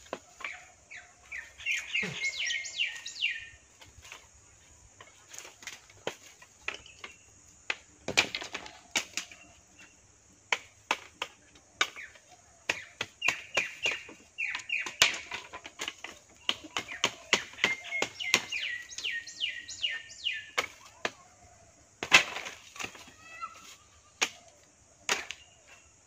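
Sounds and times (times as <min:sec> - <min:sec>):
sticks and bamboo clacking: 0:00.0 - 0:21.4, 0:22.0 - 0:25.8
bird chirping: 0:00.3 - 0:04.2, 0:11.8 - 0:21.7.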